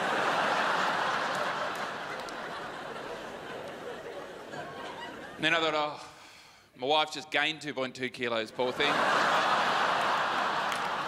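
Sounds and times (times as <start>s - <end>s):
audience laughing: 0.0s - 5.8s, 8.5s - 11.0s.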